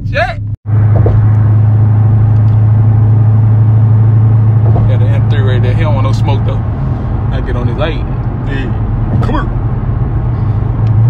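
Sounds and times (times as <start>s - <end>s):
car engine droning in cabin: 0.0s - 11.0s.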